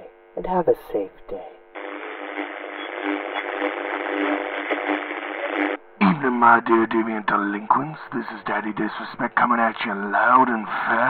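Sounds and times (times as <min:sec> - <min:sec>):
radio static hiss: 0:01.8 - 0:11.0.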